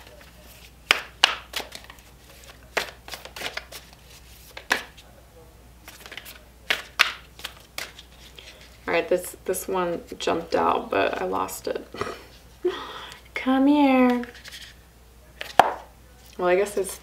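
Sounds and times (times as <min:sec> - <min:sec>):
cards being shuffled: 0:00.0 - 0:05.0, 0:05.8 - 0:08.8, 0:14.1 - 0:14.8.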